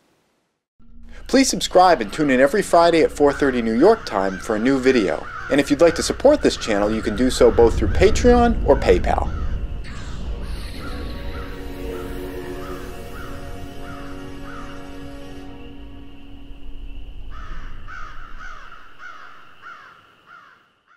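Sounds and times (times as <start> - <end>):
held low music notes: 0.8 - 19.6.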